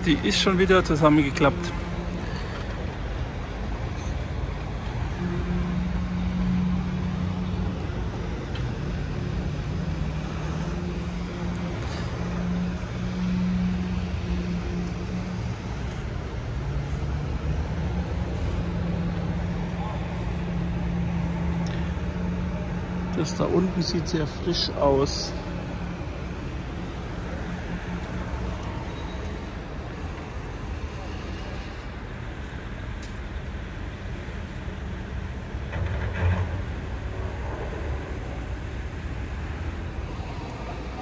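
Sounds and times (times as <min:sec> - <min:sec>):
engine drone: 0:00.0 - 0:41.0
road traffic noise: 0:00.0 - 0:41.0.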